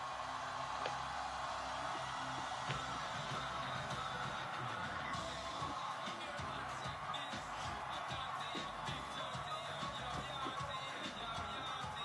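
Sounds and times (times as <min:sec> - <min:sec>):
concert music through television: 0:00.0 - 0:12.0.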